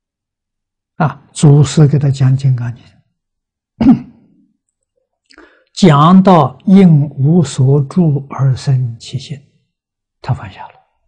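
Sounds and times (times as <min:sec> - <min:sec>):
man clearing his throat: 0:03.8 - 0:04.3.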